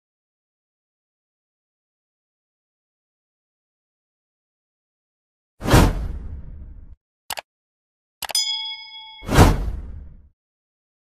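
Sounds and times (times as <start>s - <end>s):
bright metallic ding: 8.3s - 9.8s.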